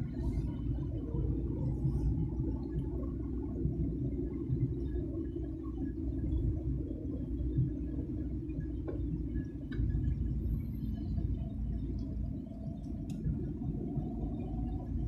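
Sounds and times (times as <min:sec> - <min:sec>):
car driving rumble from inside: 0:00.0 - 0:15.0.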